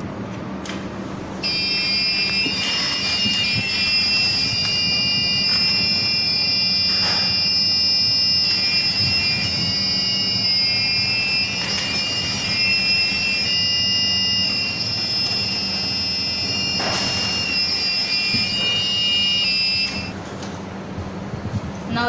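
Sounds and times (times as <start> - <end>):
robot buzzer electronic tune: 1.4 - 20.2.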